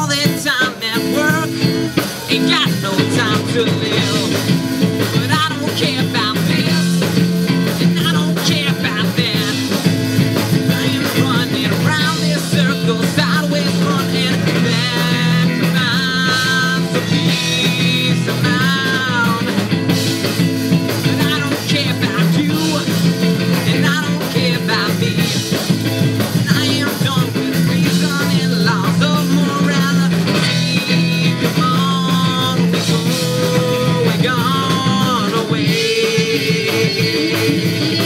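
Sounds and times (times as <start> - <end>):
live rock band playing: 0.0 - 38.0.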